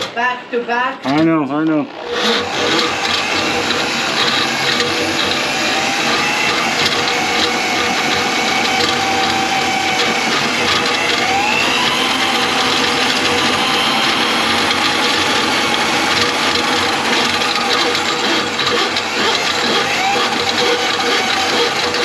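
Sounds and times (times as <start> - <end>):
drain cleaning machine motor whine: 1.1 - 22.0.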